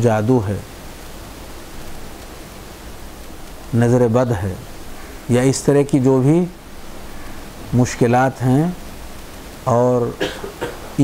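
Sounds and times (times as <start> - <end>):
steady background hiss: 0.0 - 11.0
person speaking: 3.7 - 6.6, 7.6 - 8.9, 9.6 - 11.0.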